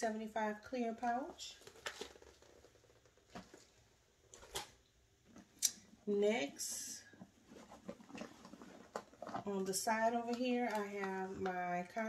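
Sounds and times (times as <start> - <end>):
plastic bag rustling and clicking: 1.5 - 5.5, 7.2 - 9.5.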